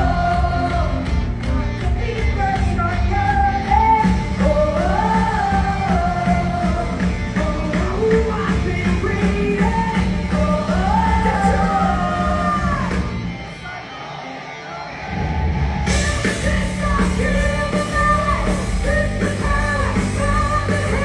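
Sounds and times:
person singing: 0.0 - 13.0, 15.9 - 21.0
rock band playing live: 0.0 - 21.0.

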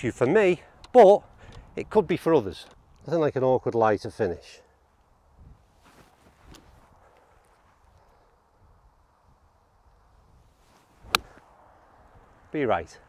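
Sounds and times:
golf club striking ball: 11.0 - 11.4.

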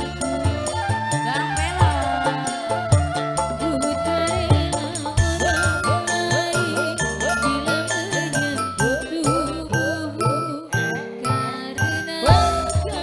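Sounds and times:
steady drum rhythm: 0.0 - 10.2, 11.2 - 13.0
band melody bending in pitch: 0.0 - 13.0
short bright high notes: 5.6 - 13.0.

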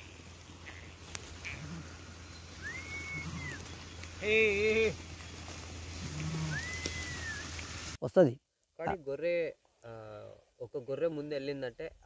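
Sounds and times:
high whistled note: 2.6 - 3.6, 6.5 - 7.5.

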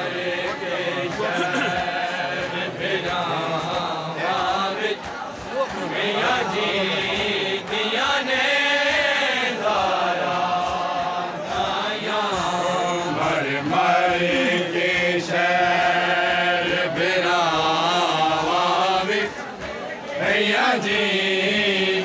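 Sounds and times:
men chanting a lament: 0.0 - 22.0.

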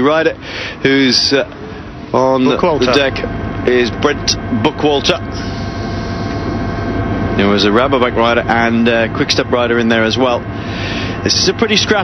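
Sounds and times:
race vehicle engine drone: 0.0 - 12.0.

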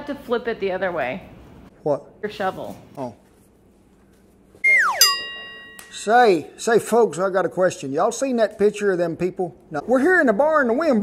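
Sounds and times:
falling whistle: 4.6 - 5.4
bright ringing ding: 4.7 - 6.6.

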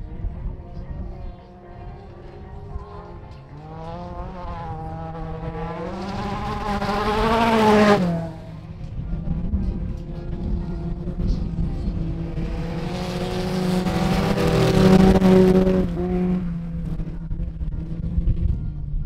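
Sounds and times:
car engines racing: 0.0 - 19.0
car passing close: 2.9 - 8.6.

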